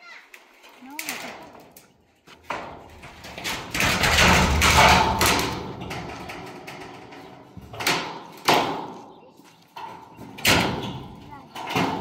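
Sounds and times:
corrugated metal scraping and rattling: 0.0 - 12.0.

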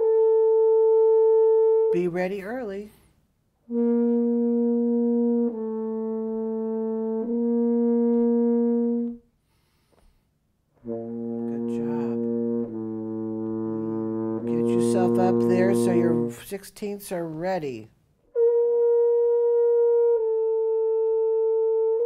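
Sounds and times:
french horn long held notes: 0.0 - 1.9, 3.6 - 9.2, 10.8 - 16.4, 18.3 - 22.0.

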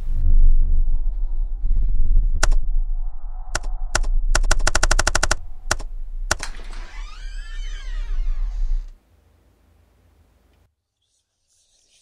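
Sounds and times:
low hum: 0.0 - 10.7
warbling tone: 0.3 - 9.0
sharp clicks: 2.4 - 2.6, 3.5 - 6.9.

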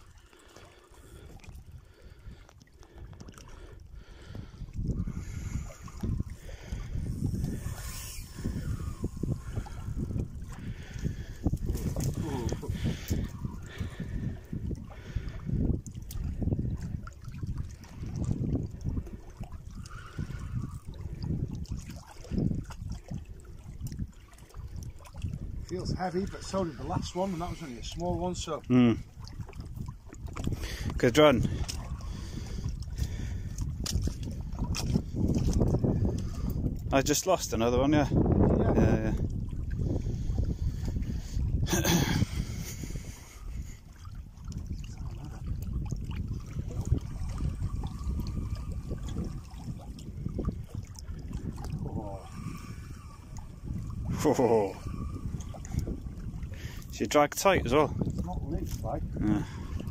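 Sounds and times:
water lapping on rocks: 0.0 - 59.9
wind buffeting microphone: 0.8 - 59.9.

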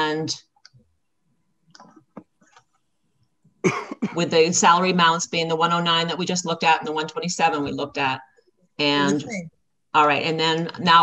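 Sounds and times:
person clearing throat: 3.6 - 4.2
person speaking: 8.8 - 11.0.

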